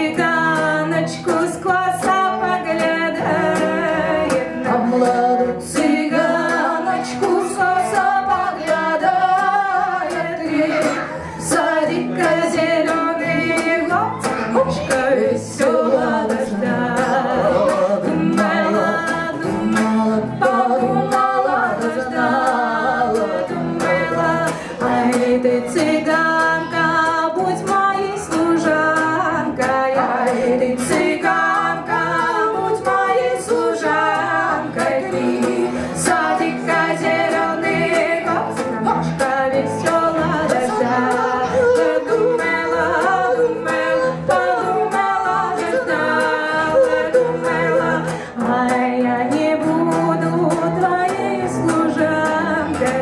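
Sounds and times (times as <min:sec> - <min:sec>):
acoustic guitar: 0:00.0 - 0:53.0
two women singing together: 0:00.0 - 0:53.0
cello: 0:00.9 - 0:53.0.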